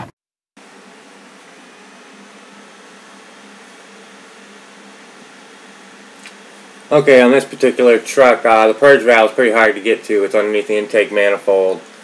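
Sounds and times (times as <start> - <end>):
faint hum: 0.6 - 12.0.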